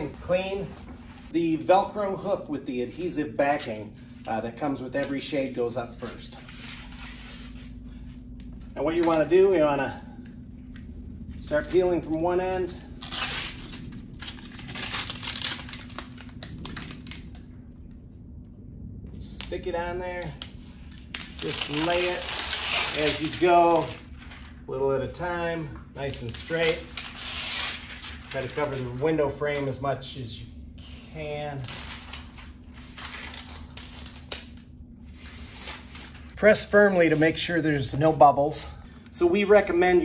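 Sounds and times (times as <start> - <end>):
velcro strip peeling: 20.4 - 24.0, 26.1 - 28.5.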